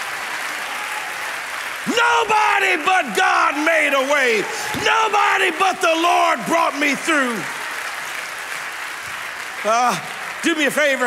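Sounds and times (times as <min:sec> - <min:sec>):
crowd applauding: 0:00.0 - 0:11.0.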